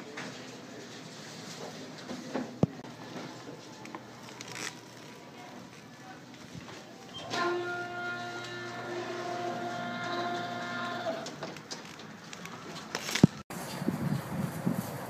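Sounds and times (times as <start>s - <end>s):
door motor whining: 7.1s - 11.9s.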